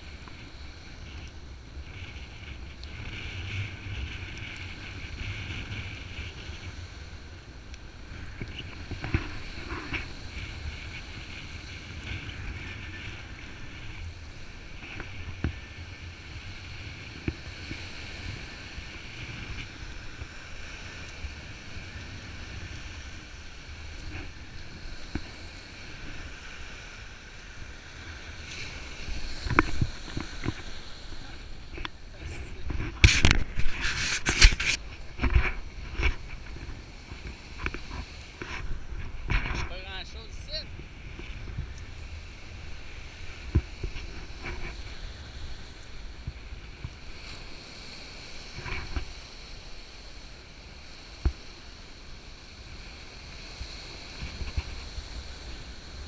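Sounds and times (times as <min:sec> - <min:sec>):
small waves washing onto shore: 0:00.0 - 0:56.0
wind rumbling on microphone: 0:00.0 - 0:56.0.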